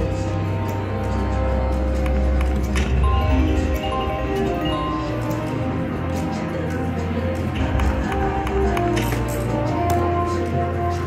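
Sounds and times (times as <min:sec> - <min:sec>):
slot machine game music: 0:00.9 - 0:10.9.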